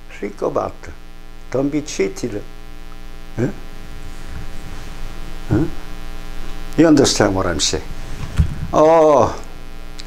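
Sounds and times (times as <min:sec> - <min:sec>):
electrical mains hum: 0:00.0 - 0:10.0
man saying eh: 0:03.4 - 0:03.7, 0:05.5 - 0:05.8, 0:08.7 - 0:09.5.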